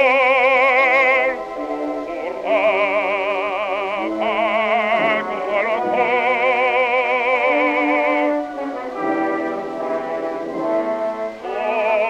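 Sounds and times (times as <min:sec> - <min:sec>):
bass voice singing opera: 0:00.0 - 0:12.0
orchestra playing held chords: 0:00.0 - 0:12.0.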